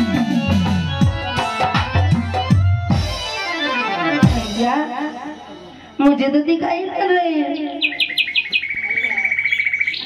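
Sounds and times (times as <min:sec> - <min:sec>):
high bird trill: 0:07.5 - 0:10.0
bird chirps falling in pitch: 0:07.6 - 0:10.0.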